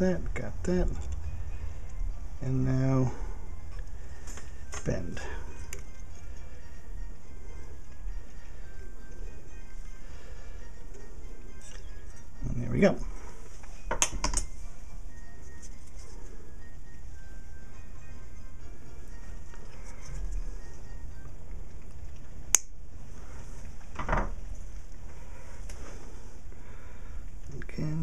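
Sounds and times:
faint music: 0:00.0 - 0:28.0
steady background hiss: 0:00.0 - 0:28.0.

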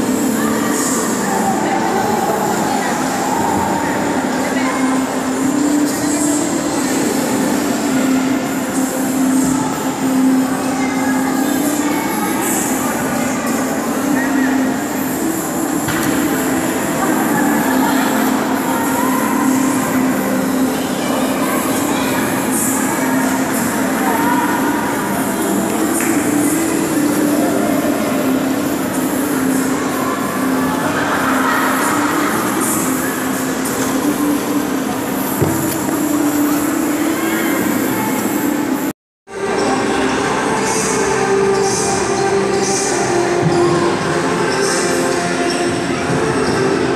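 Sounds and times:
indistinct voices: 0:00.0 - 0:46.9.

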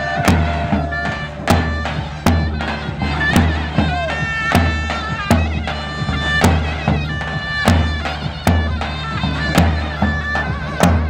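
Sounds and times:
heavy bass drum beats: 0:00.0 - 0:11.0
reedy pipe melody: 0:00.0 - 0:11.0.

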